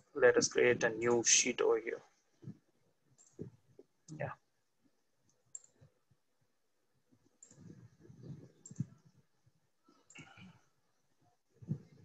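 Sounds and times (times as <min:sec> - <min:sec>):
computer mouse clicks: 0:03.1 - 0:04.2, 0:05.2 - 0:05.9, 0:07.2 - 0:09.2.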